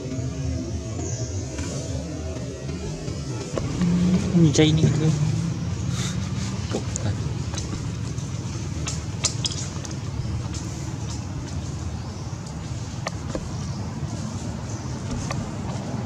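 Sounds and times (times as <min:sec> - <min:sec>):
low outdoor rumble: 0:00.0 - 0:16.0.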